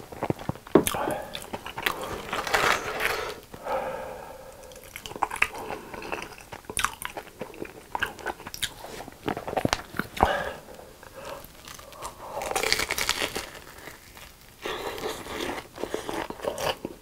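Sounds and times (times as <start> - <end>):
chewing crunchy food: 0.0 - 3.4, 4.6 - 17.0.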